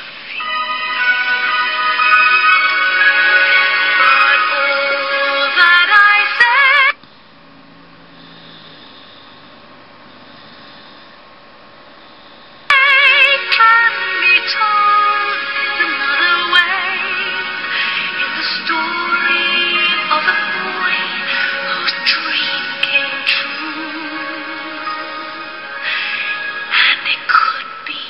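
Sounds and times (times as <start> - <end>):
woman singing with vibrato: 0.4 - 7.0, 12.7 - 28.0
piano accompaniment: 13.2 - 26.8.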